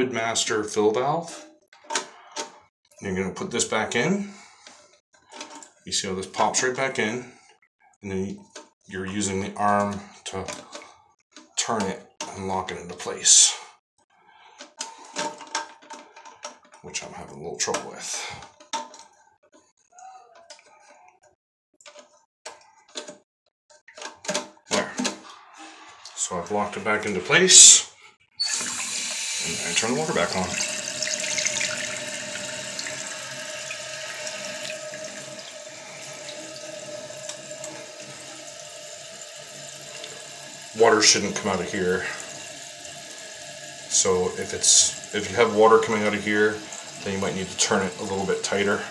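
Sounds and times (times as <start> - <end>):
water filling toilet tank: 28.4 - 48.9.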